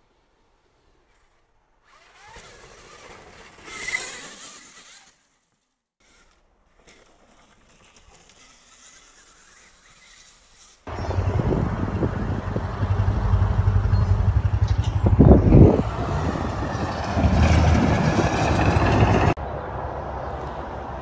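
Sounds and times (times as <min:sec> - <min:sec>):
dirt bike riding: 0:01.8 - 0:19.4.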